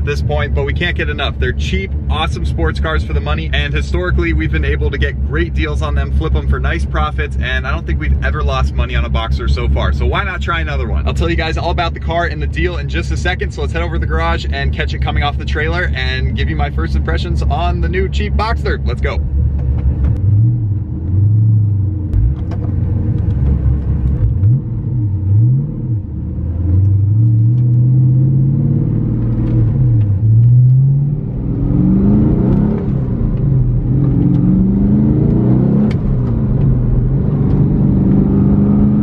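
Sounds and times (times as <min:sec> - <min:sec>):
car engine accelerating and shifting: 0:00.0 - 0:39.0.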